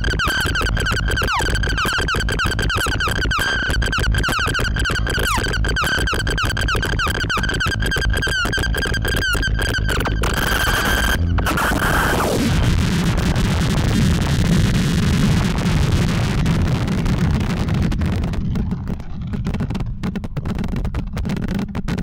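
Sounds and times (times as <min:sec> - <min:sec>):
downward pitch sweeps and clicks: 0:00.0 - 0:14.5
steady high synth tone: 0:00.0 - 0:14.8
low rumble: 0:08.9 - 0:21.3.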